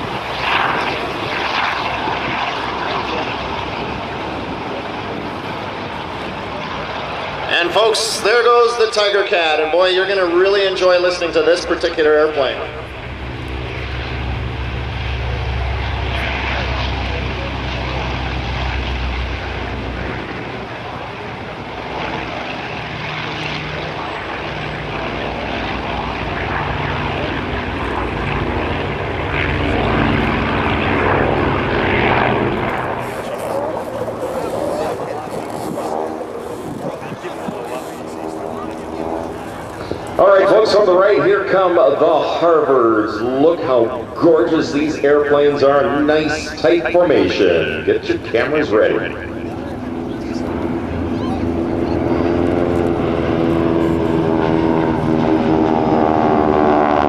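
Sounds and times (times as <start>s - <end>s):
propeller plane engines rumbling: 0.0s - 57.0s.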